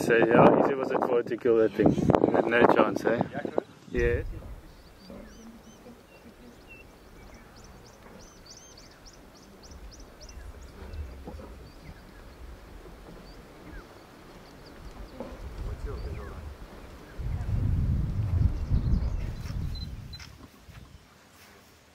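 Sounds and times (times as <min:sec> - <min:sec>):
lioness feeding: 0:04.4 - 0:17.2
small bird chirping: 0:04.6 - 0:16.4, 0:18.4 - 0:20.3.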